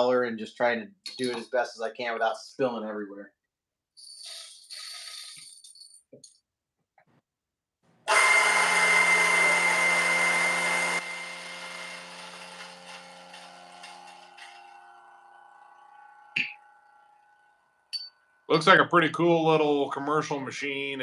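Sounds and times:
coffee grinder motor whining: 8.1s - 17.9s.

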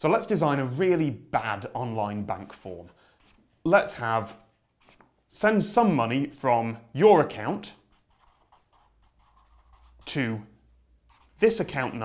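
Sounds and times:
marker scratching on paper: 2.1s - 5.1s, 7.8s - 10.2s, 11.0s - 12.0s.

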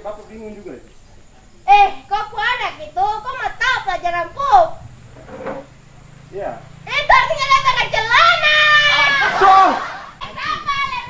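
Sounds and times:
people talking: 0.0s - 4.8s, 6.3s - 11.0s.

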